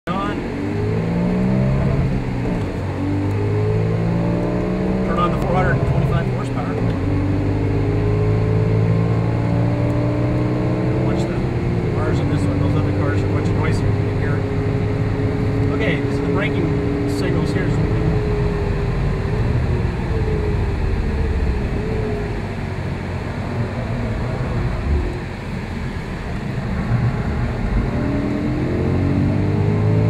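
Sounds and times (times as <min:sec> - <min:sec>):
car engine accelerating through gears: 0:00.1 - 0:30.0.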